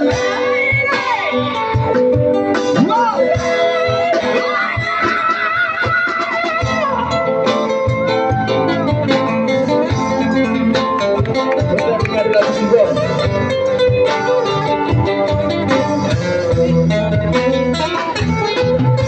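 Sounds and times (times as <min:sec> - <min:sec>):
drum kit: 0:00.0 - 0:19.0
electric guitar: 0:00.0 - 0:19.0.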